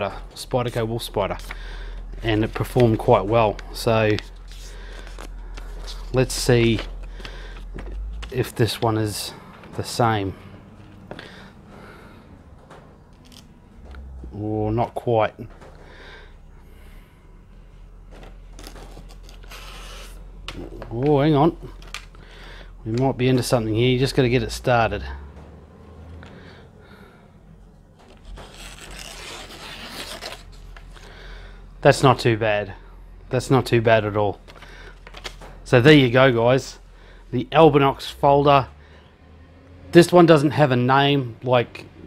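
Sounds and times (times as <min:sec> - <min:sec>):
knife blade slicing paper: 0:28.4 - 0:30.6.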